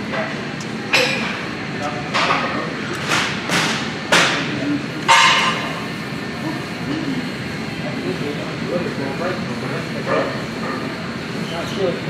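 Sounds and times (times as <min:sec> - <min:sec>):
murmur of voices: 0:03.8 - 0:12.0.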